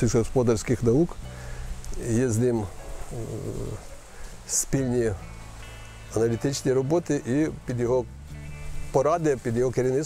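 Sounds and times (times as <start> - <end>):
man speaking: 0.0 - 1.2, 1.9 - 3.9, 4.5 - 5.3, 6.1 - 8.1, 8.9 - 10.0.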